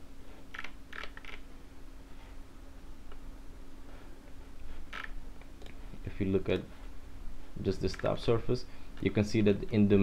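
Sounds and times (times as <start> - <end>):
steady low hum: 0.0 - 10.0
computer mouse clicking: 0.5 - 1.4, 4.9 - 5.8.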